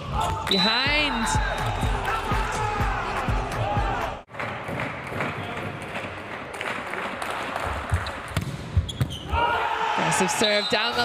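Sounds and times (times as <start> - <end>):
indoor hall ambience: 0.0 - 10.0
sharp volleyball strikes: 7.9 - 9.4.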